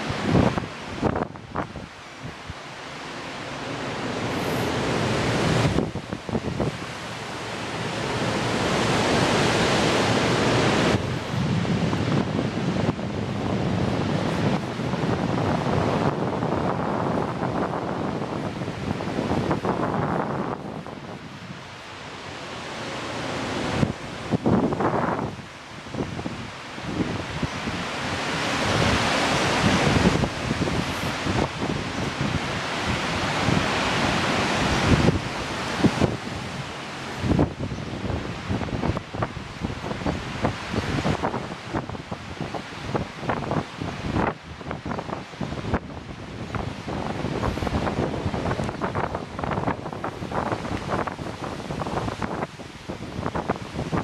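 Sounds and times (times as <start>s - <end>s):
surf breaking on beach: 0.0s - 54.0s
wind buffeting microphone: 0.0s - 54.0s.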